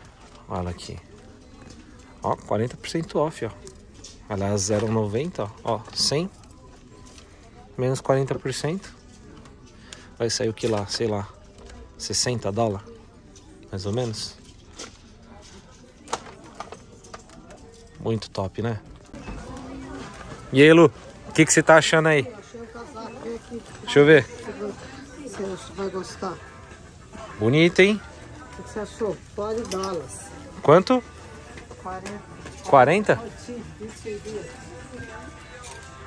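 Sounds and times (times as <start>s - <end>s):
faint voices murmuring: 0.0s - 36.0s
quiet shop background noise: 0.0s - 36.0s
background music: 17.6s - 36.0s.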